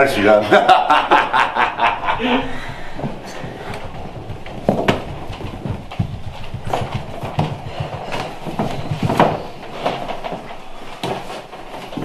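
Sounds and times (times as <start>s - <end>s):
knocks on wooden floor: 2.5s - 11.4s.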